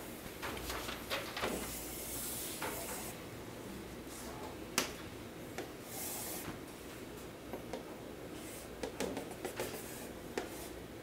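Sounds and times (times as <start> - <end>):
chalk scratching on chalkboard: 8.4 - 10.8
chalk tapping board: 8.8 - 10.7.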